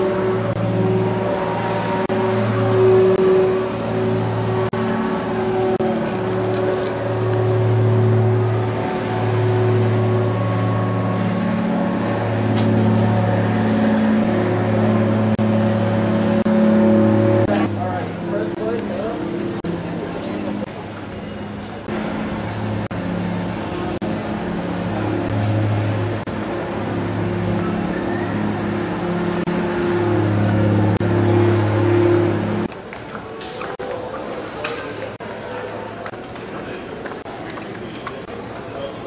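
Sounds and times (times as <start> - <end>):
blimp engines droning: 0.0 - 39.0.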